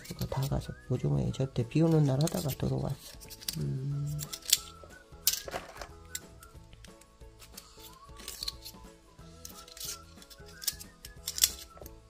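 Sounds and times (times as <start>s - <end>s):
background music: 0.0s - 12.0s
knife scraping clam shell: 2.1s - 4.8s, 6.9s - 11.8s.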